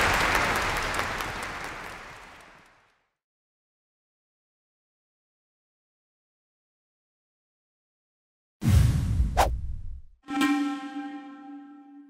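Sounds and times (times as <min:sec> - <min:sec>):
short sharp swish: 0:09.2 - 0:09.6.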